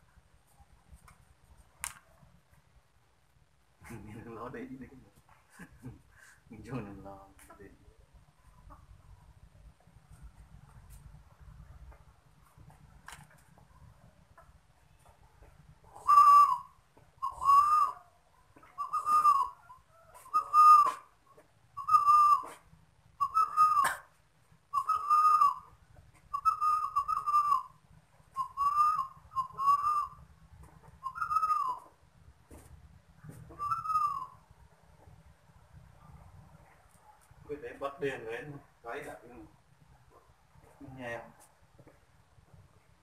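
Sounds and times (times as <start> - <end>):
dove cooing: 15.9 - 18.1, 18.7 - 21.1, 33.5 - 34.4.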